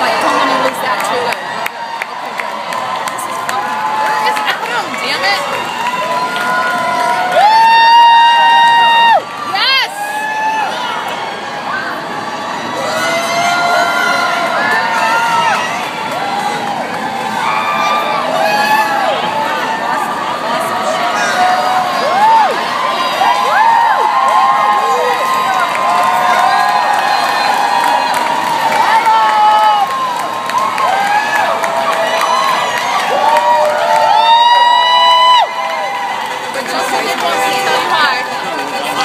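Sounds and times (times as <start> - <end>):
crowd cheering and whooping: 0.0 - 39.0.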